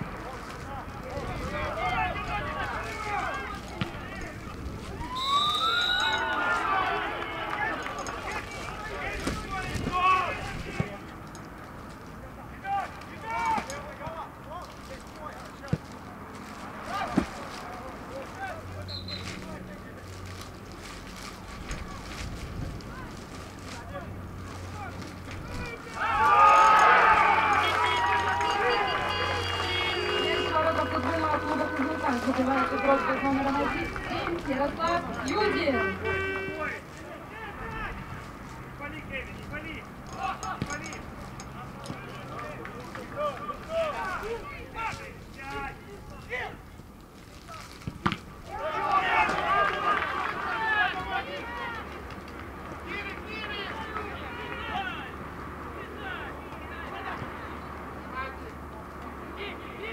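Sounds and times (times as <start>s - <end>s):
players shouting: 0.2s - 11.1s, 12.4s - 15.8s, 23.8s - 46.6s, 47.6s - 58.6s
ball kicks: 3.6s - 5.0s, 47.7s - 48.4s.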